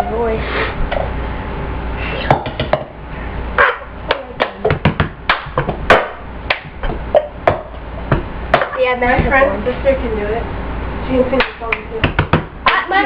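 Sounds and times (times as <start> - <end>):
hand claps: 4.1 - 6.7, 11.4 - 12.9.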